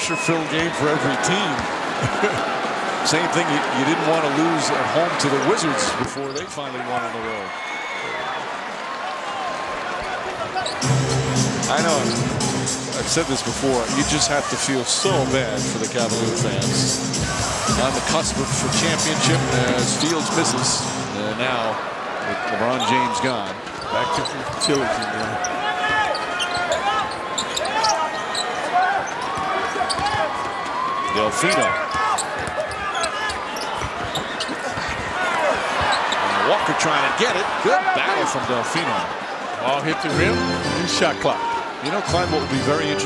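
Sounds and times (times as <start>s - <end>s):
arena crowd noise: 0.0s - 43.0s
loud music: 10.8s - 14.5s, 15.1s - 21.2s, 40.1s - 41.2s
sneakers squeaking on hardwood: 22.7s - 36.4s
basketball bouncing: 31.9s - 36.0s.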